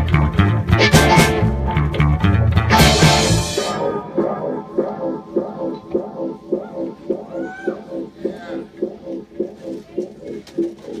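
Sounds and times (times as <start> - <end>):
rock band playing a riff: 0.0 - 8.0.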